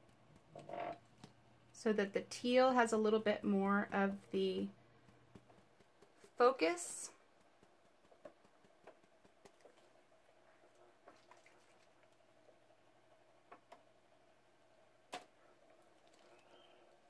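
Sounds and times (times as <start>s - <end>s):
faint room hum: 0.0s - 17.0s
sponge dauber tapping: 2.4s - 11.4s.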